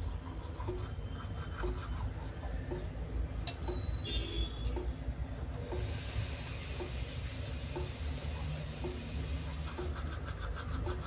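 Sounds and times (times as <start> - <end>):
toothbrush scrubbing teeth: 0.0 - 2.7, 8.8 - 11.0
steady hiss: 5.8 - 9.7.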